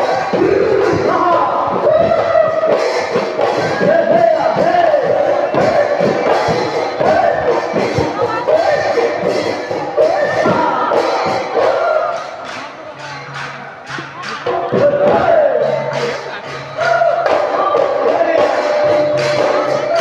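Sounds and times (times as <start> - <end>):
drum strokes: 0.0 - 20.0
people singing: 0.0 - 20.0.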